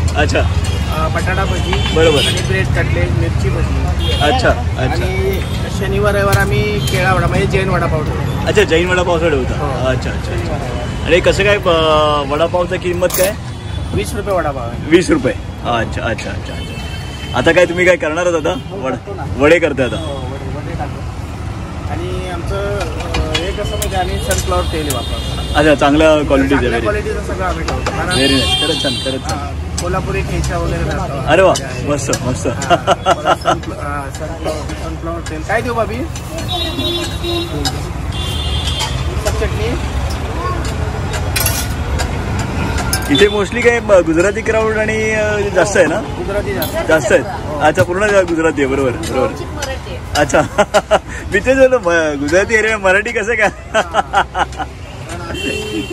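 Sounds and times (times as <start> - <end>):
people talking: 0.0 - 13.4, 21.9 - 37.9, 42.9 - 50.6, 51.3 - 55.9
street traffic rumble: 0.0 - 55.9
conversational speech: 21.8 - 37.9.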